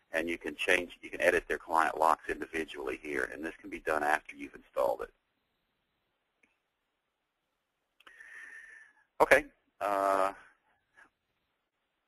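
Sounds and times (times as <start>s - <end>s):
quiet hiss with whistle tone: 0.0s - 12.0s
man's voice: 0.1s - 5.1s, 9.2s - 10.4s.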